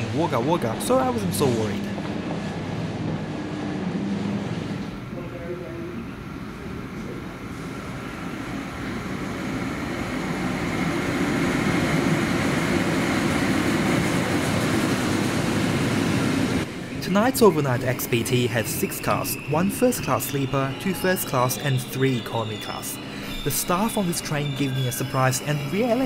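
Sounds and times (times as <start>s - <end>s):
diesel train rumbling: 0.0s - 26.0s.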